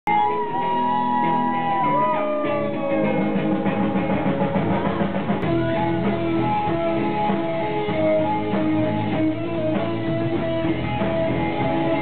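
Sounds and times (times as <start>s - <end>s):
electric guitar held notes: 0.1s - 12.0s
live rock band: 0.1s - 12.0s.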